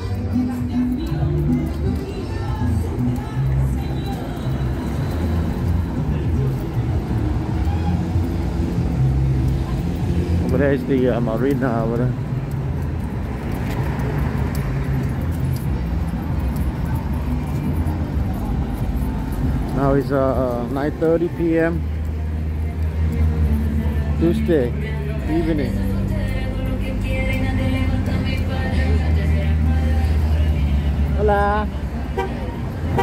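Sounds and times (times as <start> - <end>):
faint voices: 0.0 - 12.3, 15.1 - 33.0
car and truck engines rumbling: 0.0 - 33.0.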